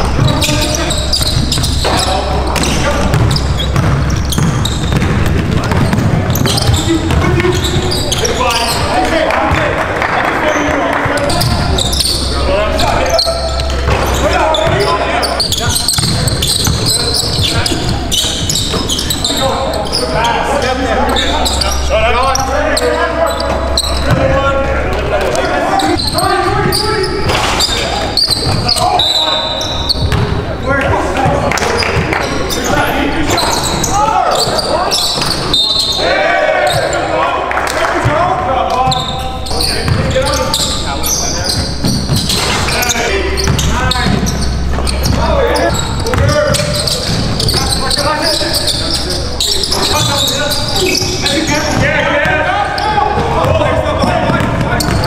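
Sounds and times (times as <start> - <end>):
players' voices and calls: 0.0 - 55.0
basketball bouncing on hardwood: 2.6 - 8.0.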